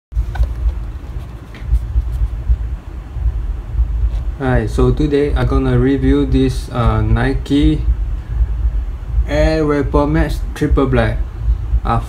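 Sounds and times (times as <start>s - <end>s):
low uneven rumble: 0.1s - 12.0s.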